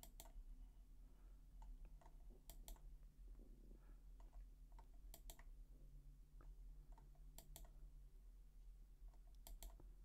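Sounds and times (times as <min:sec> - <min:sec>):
low steady hum: 0:00.0 - 0:10.0
faint computer clicks: 0:04.2 - 0:05.5, 0:09.2 - 0:09.9.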